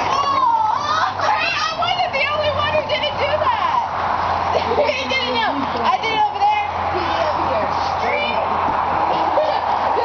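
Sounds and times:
girls excited chatter: 0.0s - 10.0s.

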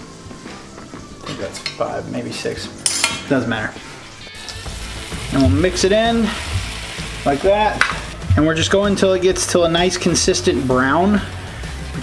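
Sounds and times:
butter sizzling in a skillet: 4.1s - 8.3s, 9.4s - 12.0s.

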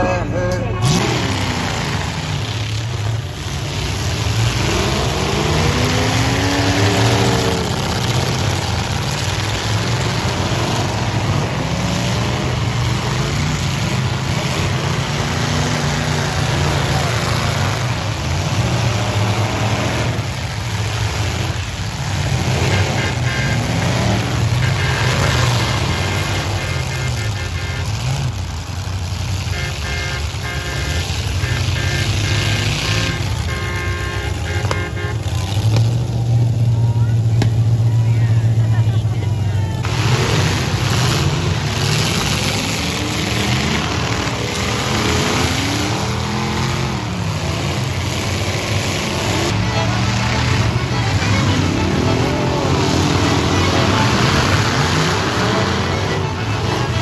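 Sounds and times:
car engines revving hard: 0.0s - 57.0s.

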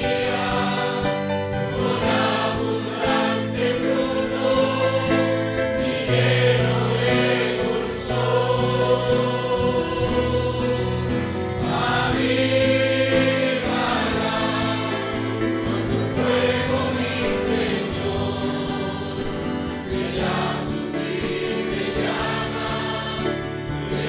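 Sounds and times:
congregation singing a hymn: 0.0s - 24.0s.

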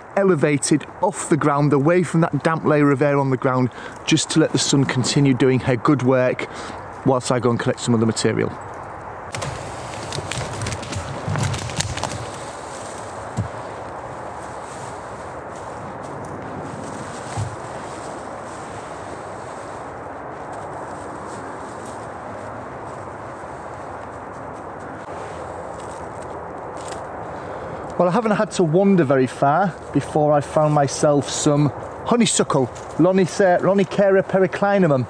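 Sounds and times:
steady outdoor hiss: 0.0s - 35.0s
dry fronds rustling and crackling: 0.4s - 35.0s.

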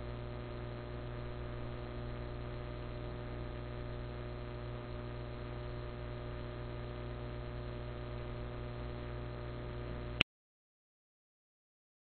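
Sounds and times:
electrical mains hum: 0.0s - 10.2s.

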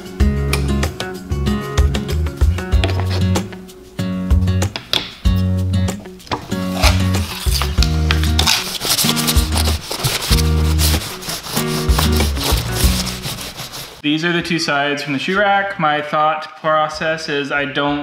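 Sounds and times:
music with repeating bass line: 0.2s - 3.6s, 9.3s - 13.2s
cloth rubbing wooden dowels: 6.4s - 14.0s.

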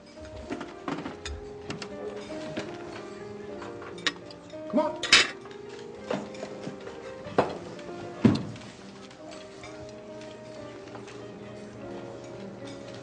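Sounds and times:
soft background music: 0.0s - 13.0s
cutlery clinking on a plate: 0.1s - 10.3s, 12.1s - 13.0s.

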